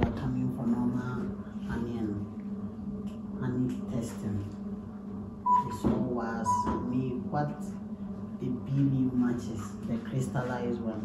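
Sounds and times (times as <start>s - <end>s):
voices: 5.5s - 7.7s.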